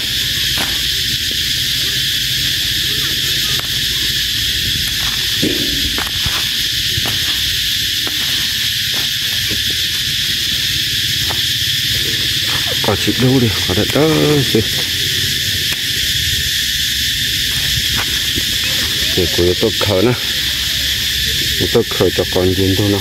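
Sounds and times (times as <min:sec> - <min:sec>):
low hum: 0:00.0 - 0:19.4
high-pitched insect drone: 0:00.0 - 0:23.0.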